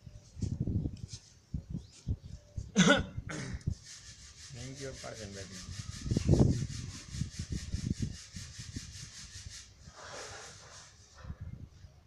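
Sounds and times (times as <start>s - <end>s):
person coughing: 2.8s - 3.6s.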